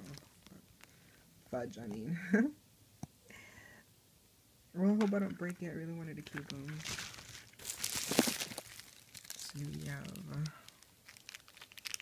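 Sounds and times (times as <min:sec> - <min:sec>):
bubble wrap crinkling: 0:06.3 - 0:12.0
crackling plastic burst: 0:06.3 - 0:12.0.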